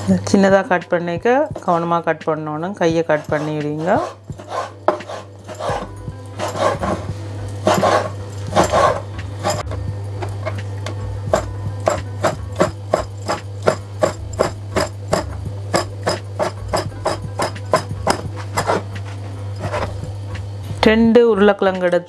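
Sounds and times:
knife chopping on wooden board: 3.3 - 7.0, 11.3 - 19.0.

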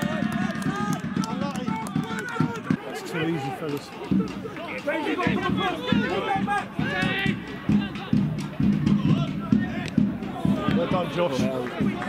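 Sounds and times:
low drum-like thumps: 3.9 - 12.0.

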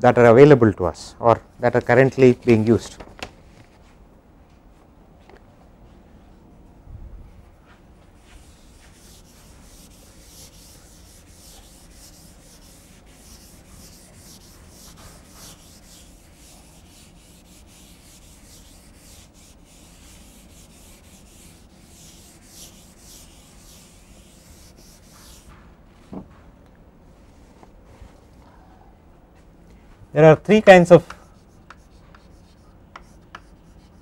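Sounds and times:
duster rubbing chalkboard: 8.1 - 25.6, 31.0 - 34.0.

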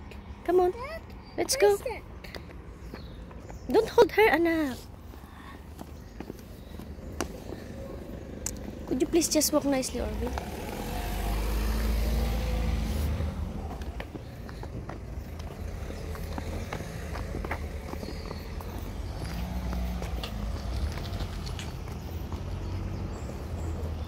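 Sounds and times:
scooter wheels rolling on asphalt: 0.6 - 24.0
footsteps: 12.8 - 23.5.

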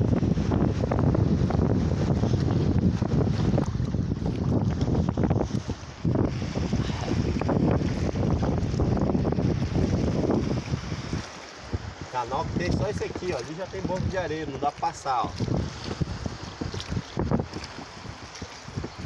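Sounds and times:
water moving around boat: 0.0 - 19.0
wind buffeting microphone: 0.0 - 19.0.

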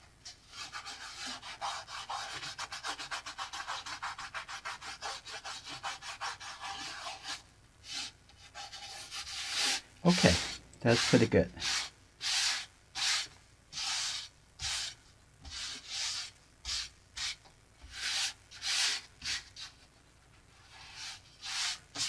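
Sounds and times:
fingers rubbing paper: 0.6 - 19.7.

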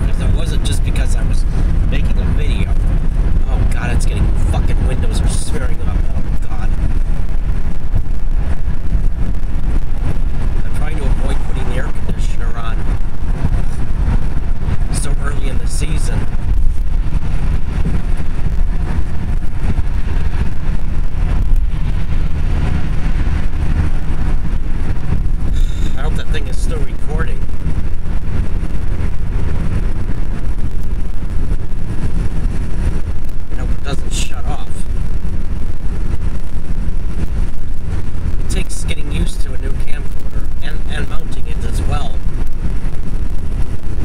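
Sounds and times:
car road and engine rumble: 0.0 - 44.0.

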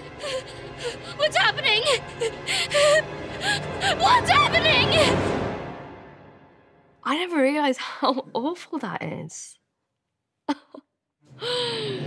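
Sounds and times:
girl gasping and whimpering: 0.0 - 4.2, 11.4 - 12.0
background music: 0.0 - 9.1, 11.2 - 12.0.

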